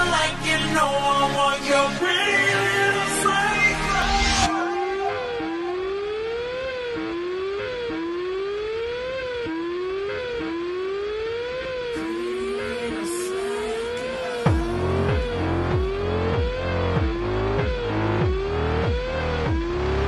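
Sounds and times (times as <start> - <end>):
siren-like wail in pop track: 0.0 - 20.0.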